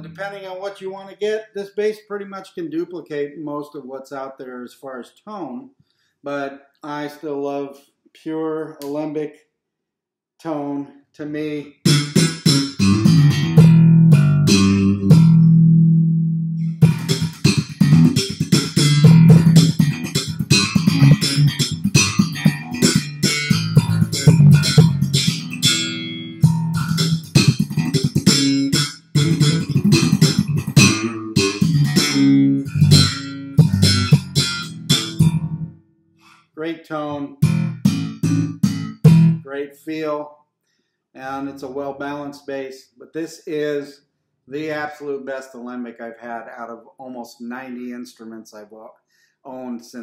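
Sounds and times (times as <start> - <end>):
electric bass plucked notes: 0.0 - 0.4, 11.7 - 35.8, 37.1 - 39.5.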